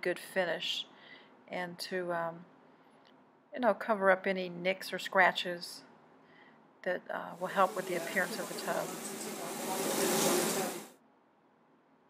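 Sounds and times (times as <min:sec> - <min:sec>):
steady hiss: 0:07.4 - 0:10.9.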